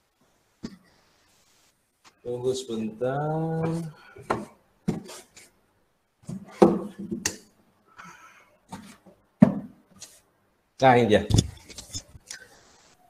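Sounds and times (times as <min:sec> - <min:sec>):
cardboard boxes knocking and rubbing: 0:03.7 - 0:05.4, 0:06.2 - 0:07.2, 0:08.7 - 0:09.8.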